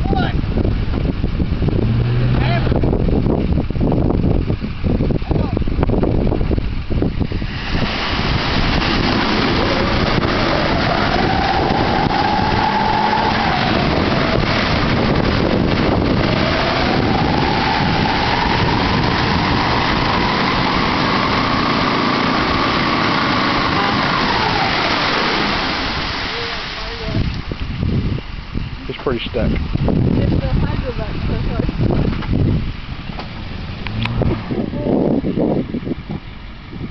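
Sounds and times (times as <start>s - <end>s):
truck engine revving: 0.5s - 27.0s, 30.3s - 36.6s
tyres spinning in mud: 7.6s - 26.9s.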